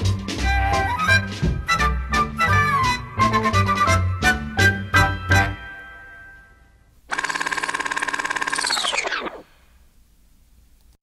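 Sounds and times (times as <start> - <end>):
fast-pulsing buzz: 7.1 - 9.8.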